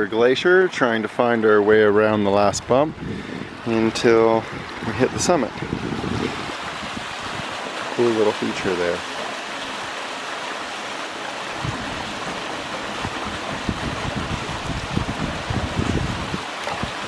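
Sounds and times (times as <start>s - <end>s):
wind buffeting microphone: 1.8s - 8.6s, 11.5s - 17.0s.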